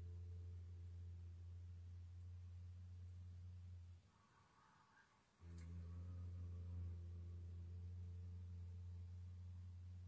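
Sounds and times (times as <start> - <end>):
man humming a low tone: 5.4 - 10.0.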